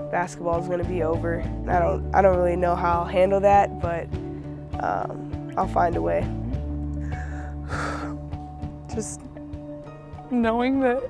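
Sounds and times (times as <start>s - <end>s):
soft background music: 0.0s - 11.0s
sniff: 7.0s - 8.2s
woman crying gasping breath: 7.1s - 8.2s.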